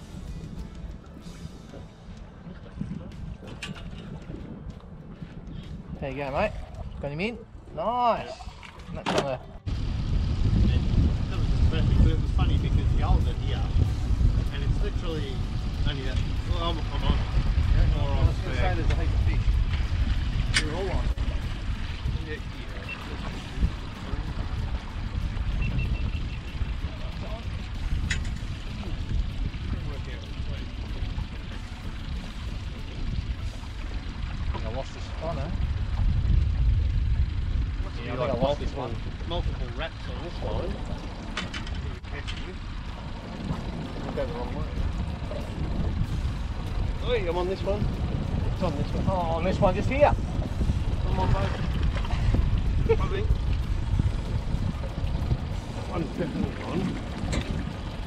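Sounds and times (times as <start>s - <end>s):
boat engine rumble: 0.0s - 58.0s.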